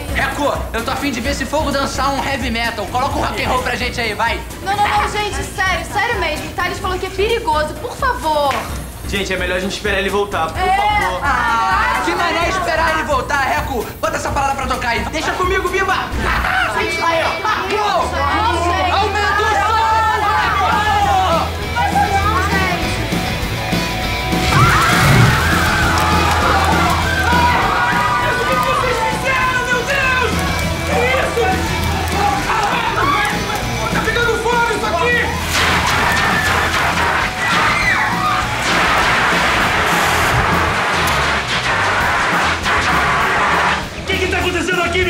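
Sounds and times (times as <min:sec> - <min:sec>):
young people shouting and singing: 0:10.4 - 0:13.3, 0:16.2 - 0:23.4, 0:24.1 - 0:38.6
loud rock music: 0:19.5 - 0:45.0
dense rush of noise: 0:24.3 - 0:27.2, 0:35.4 - 0:44.0.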